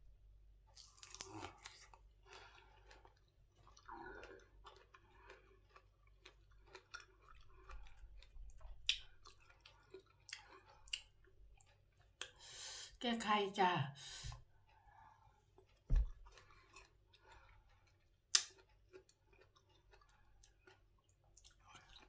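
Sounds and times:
close chewing with mouth clicks: 0.7s - 12.5s, 14.5s - 22.0s.

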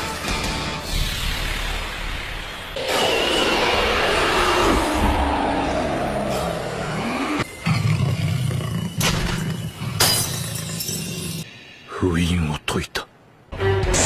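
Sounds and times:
rushing roar falling in pitch: 2.8s - 7.6s.

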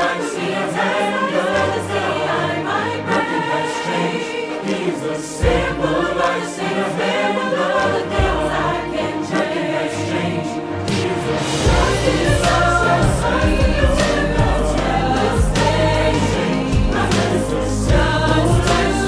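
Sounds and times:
choir singing worship song: 0.0s - 19.0s
sustained bass notes: 11.6s - 19.0s.

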